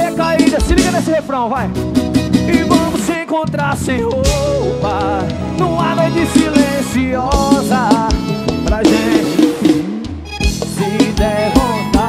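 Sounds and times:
bass guitar: 0.0 - 12.0
short instrumental lines: 0.0 - 12.0
drum kit hits: 0.2 - 12.0.

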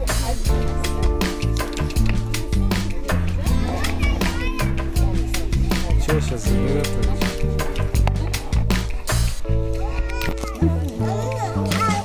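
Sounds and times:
background music with voices: 0.0 - 12.0.

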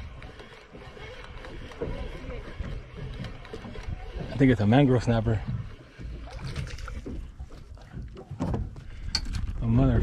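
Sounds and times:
low rumble of wind: 0.0 - 10.0.

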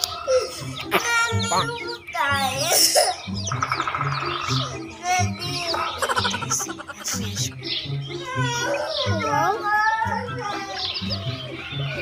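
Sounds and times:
baby chicks peeping: 0.0 - 12.0
background music with beat: 3.3 - 8.6.

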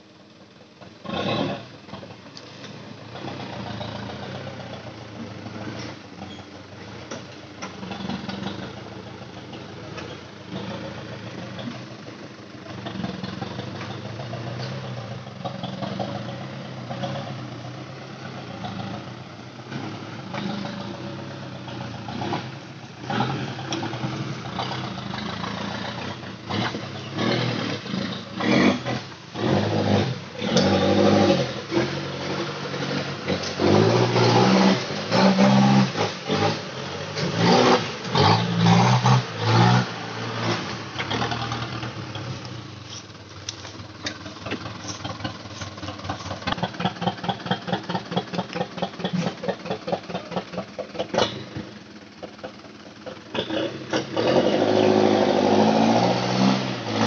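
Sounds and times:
truck engine revving: 0.8 - 57.0.

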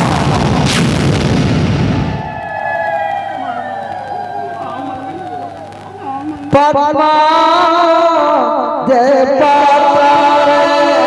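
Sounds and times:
loud rumbling crash: 0.0 - 2.4
faint wavering voice: 2.8 - 6.7.

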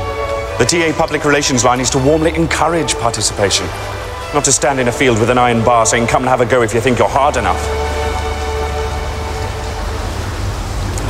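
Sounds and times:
falling water hiss: 0.0 - 11.0
low hum: 6.8 - 11.0.

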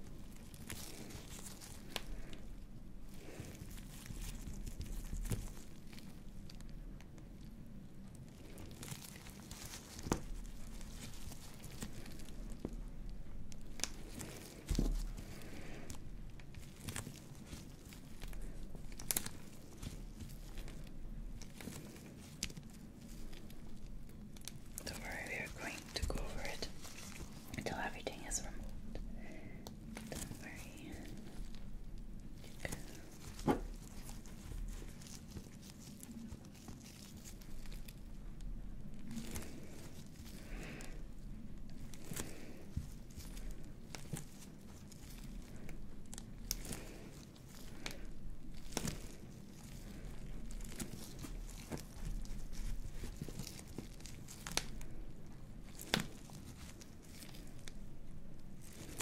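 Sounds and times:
soft crinkling: 0.0 - 59.0
gloves rubbing silicone pad: 29.7 - 59.0.

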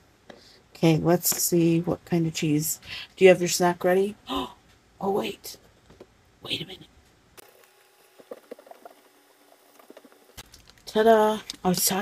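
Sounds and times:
plastic packaging clicks: 10.4 - 10.9.

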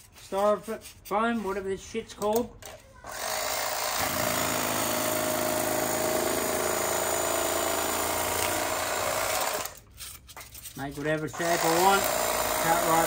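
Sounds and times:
electric knife cutting foam: 3.2 - 9.8, 11.4 - 13.0.

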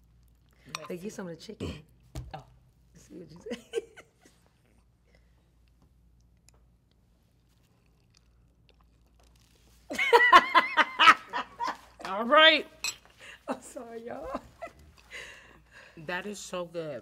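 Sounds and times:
metal spoon clinking on bowl: 0.7 - 1.0, 12.8 - 13.1.

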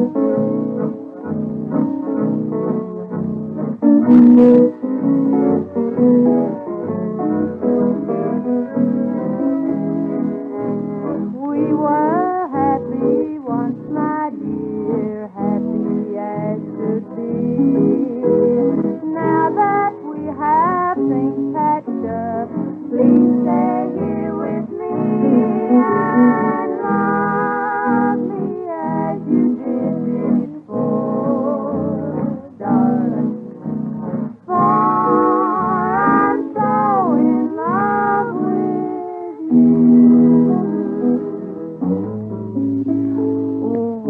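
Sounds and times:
country string-band music: 0.0 - 44.0.

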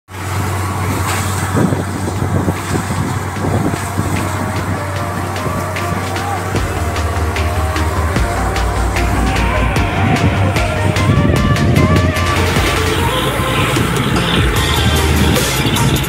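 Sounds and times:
drilling rig running: 0.1 - 16.0
water blowing out: 0.1 - 16.0
background music with beat: 3.4 - 16.0.

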